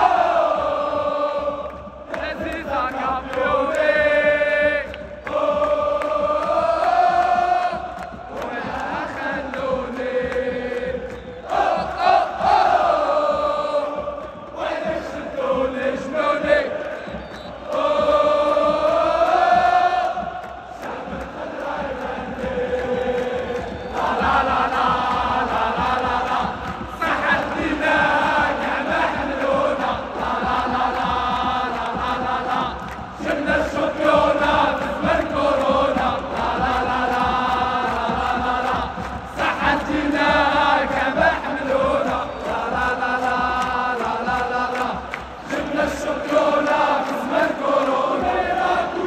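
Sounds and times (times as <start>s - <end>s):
crowd chanting in unison: 0.0s - 49.0s.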